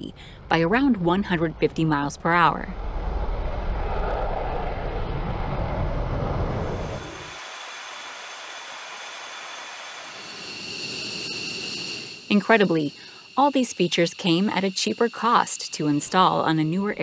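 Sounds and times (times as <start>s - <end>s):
jet engine deep rumbling: 0.0s - 17.0s
crickets chirping: 6.7s - 17.0s
steady hiss: 7.0s - 16.4s.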